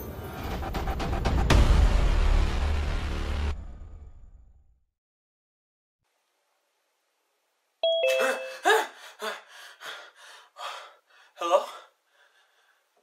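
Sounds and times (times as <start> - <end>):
electronic chime: 7.8 - 8.8.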